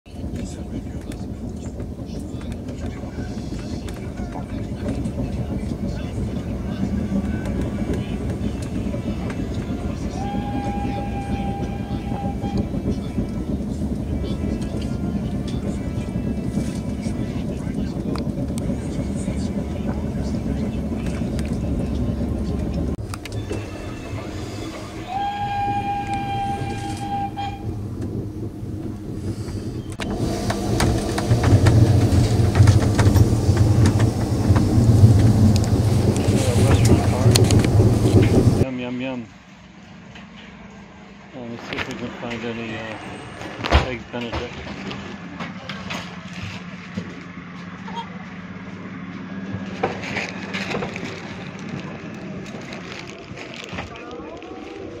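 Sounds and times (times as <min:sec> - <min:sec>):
moving train rumble: 0:00.1 - 0:55.0
train horn blasts: 0:09.7 - 0:12.8, 0:23.3 - 0:27.8.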